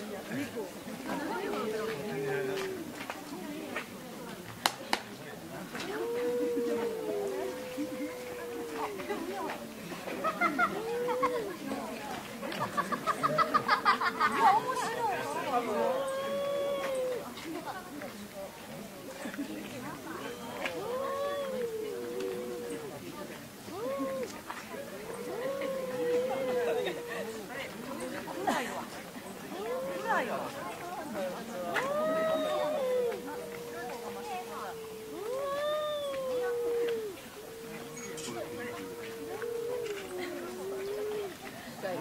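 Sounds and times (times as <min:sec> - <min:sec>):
cats yowling: 0:05.8 - 0:09.5, 0:10.4 - 0:11.7, 0:15.1 - 0:17.3, 0:20.2 - 0:23.1, 0:23.7 - 0:27.6, 0:29.4 - 0:41.4.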